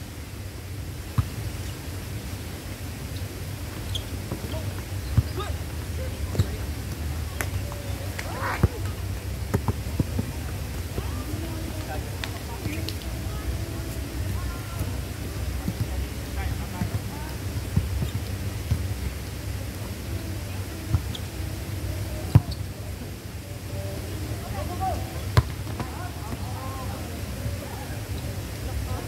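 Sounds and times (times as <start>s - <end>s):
players' voices: 3.4s - 29.0s.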